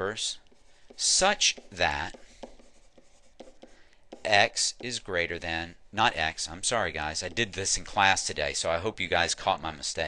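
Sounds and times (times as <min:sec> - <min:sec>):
stylus scratching on tablet: 0:00.0 - 0:05.1, 0:06.8 - 0:08.7.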